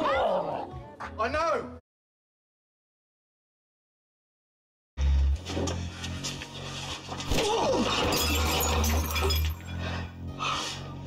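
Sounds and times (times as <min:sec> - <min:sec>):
glass shattering crash: 0:07.3 - 0:09.8.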